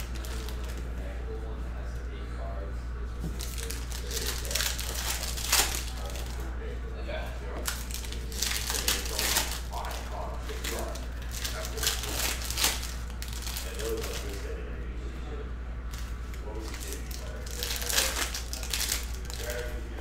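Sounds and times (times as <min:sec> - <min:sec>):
foil wrappers crinkling and tearing: 0:00.0 - 0:00.9, 0:03.3 - 0:06.5, 0:07.5 - 0:14.6, 0:15.9 - 0:19.8
steady low hum: 0:00.0 - 0:20.0
cards being handled: 0:07.6 - 0:14.5.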